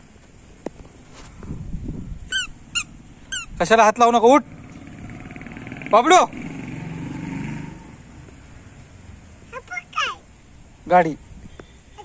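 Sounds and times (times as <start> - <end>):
squeaker shoes squeaking: 2.3 - 3.6.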